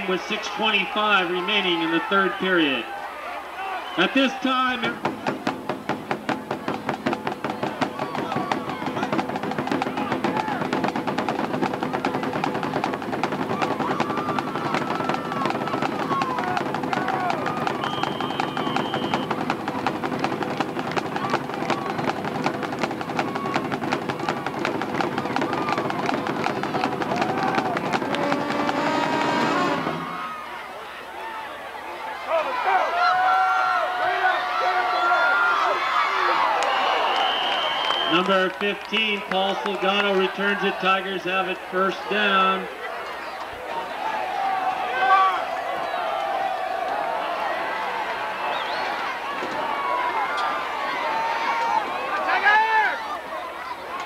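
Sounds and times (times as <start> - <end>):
crowd voices: 0.0 - 54.0
band music with rapid drumming: 4.0 - 30.4.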